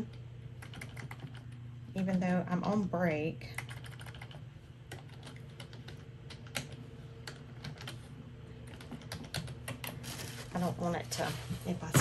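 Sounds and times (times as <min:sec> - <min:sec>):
steady low hum: 0:00.0 - 0:12.0
keyboard typing: 0:00.6 - 0:01.6, 0:03.5 - 0:10.0.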